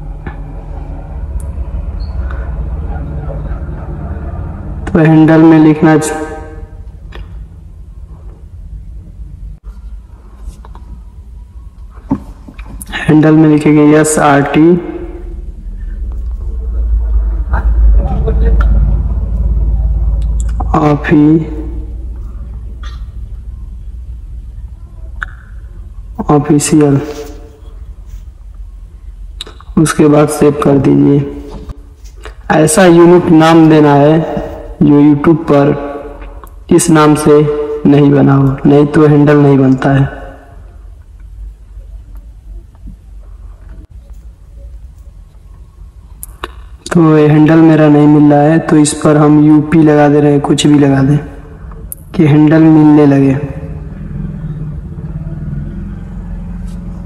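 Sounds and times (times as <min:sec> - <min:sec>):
vehicle engine rumbling: 0:00.0 - 0:37.8, 0:50.2 - 0:57.0
man speaking: 0:04.8 - 0:06.8, 0:12.8 - 0:15.4, 0:16.4 - 0:22.0, 0:26.2 - 0:27.6, 0:29.7 - 0:31.7, 0:32.3 - 0:40.5, 0:46.9 - 0:53.8.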